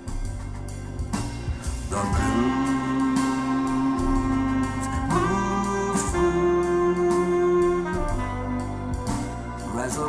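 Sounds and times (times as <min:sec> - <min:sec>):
bass: 0:00.0 - 0:10.0
held horn note: 0:01.9 - 0:10.0.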